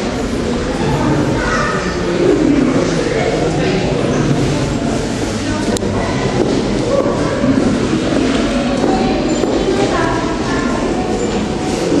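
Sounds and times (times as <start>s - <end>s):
faint indistinct voices: 0.0s - 12.0s
loud background din: 0.0s - 12.0s.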